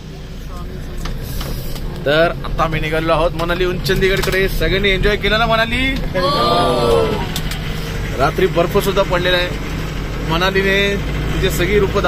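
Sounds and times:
minibus engine and road rumble: 0.0s - 12.0s.

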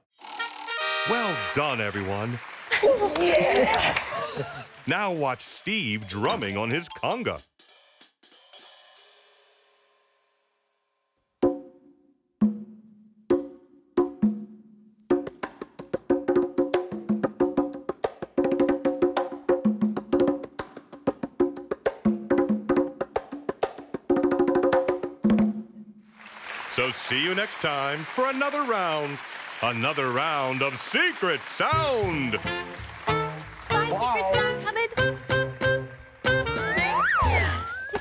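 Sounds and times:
conga drums played by hand: 15.1s - 25.6s, 27.4s - 37.5s.

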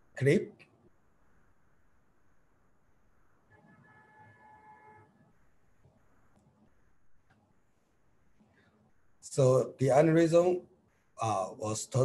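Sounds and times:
faint steady multi-pitch tone: 0.9s - 9.4s.

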